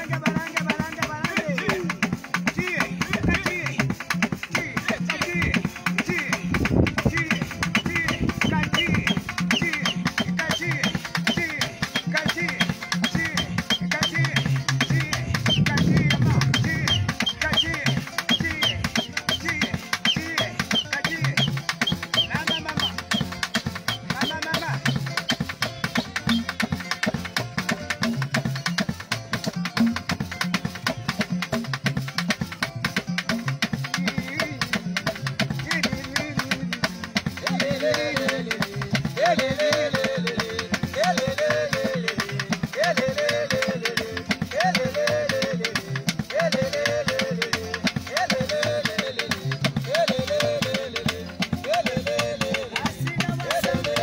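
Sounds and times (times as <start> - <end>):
drums and percussion rhythm: 0.0 - 54.0
wavering melody line: 7.5 - 26.8.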